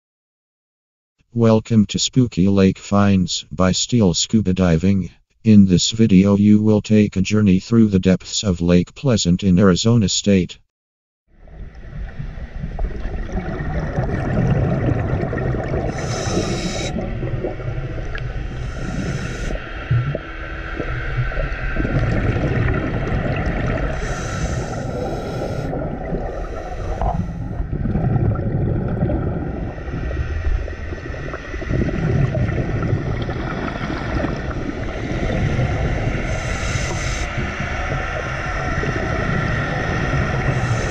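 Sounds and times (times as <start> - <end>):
exhaled bubbles rumbling: 11.3 - 40.9
regulator inhale hiss: 15.9 - 17.0, 18.5 - 19.6, 24.0 - 27.6, 36.2 - 37.4, 40.5 - 40.9.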